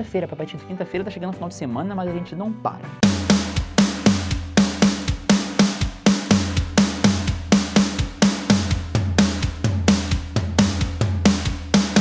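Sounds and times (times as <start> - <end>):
bass drum hits: 3.0 - 12.0
drum kit hand strokes: 3.0 - 12.0.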